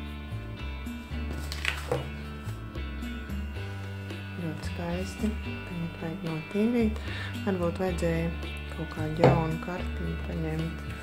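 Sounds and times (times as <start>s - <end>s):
background music with guitar: 0.0s - 11.0s
woman's voice: 4.4s - 10.9s
bass line: 7.5s - 10.6s.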